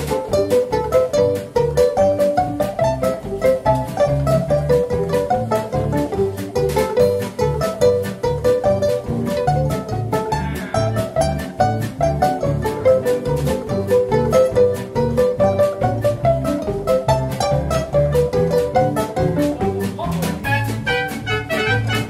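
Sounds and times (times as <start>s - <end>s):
western swing band playing polka: 0.0s - 22.0s.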